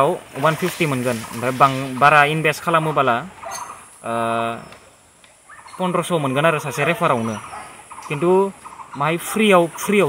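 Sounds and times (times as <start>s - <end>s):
man talking: 0.0s - 3.4s, 4.0s - 4.7s, 5.8s - 7.5s, 8.1s - 10.0s.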